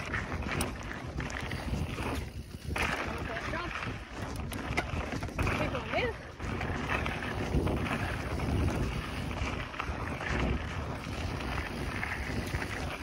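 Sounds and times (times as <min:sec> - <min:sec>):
bike tyres rolling on dirt: 0:00.0 - 0:13.0
wind buffeting microphone: 0:00.0 - 0:13.0.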